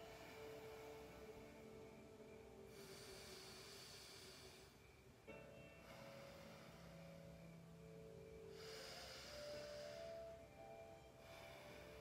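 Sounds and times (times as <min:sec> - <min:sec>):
breath through nostril: 0:08.5 - 0:10.3.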